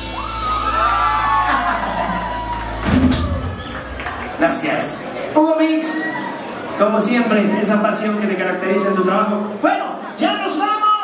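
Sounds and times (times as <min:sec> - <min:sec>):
crowd cheering and whooping: 0:00.0 - 0:05.0, 0:05.7 - 0:06.8.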